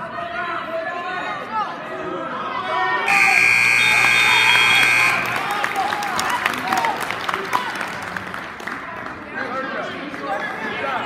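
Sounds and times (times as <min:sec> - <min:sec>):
crowd chatter: 0:00.0 - 0:11.0
scoreboard buzzer tone: 0:03.1 - 0:05.4
crowd clapping: 0:03.8 - 0:10.9.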